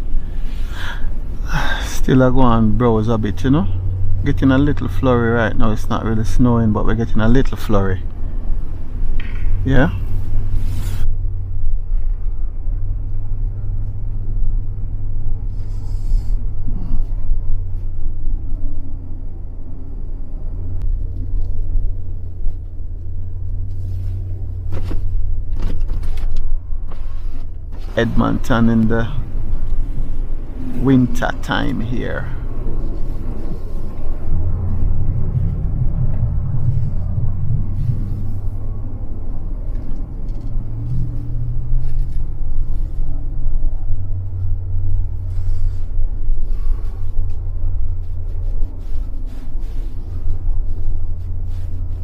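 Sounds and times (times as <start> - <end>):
low rumble: 0.0 - 52.0
man breathing: 0.2 - 1.9
man talking: 1.4 - 8.0, 9.6 - 10.0, 28.0 - 29.3, 30.8 - 32.4.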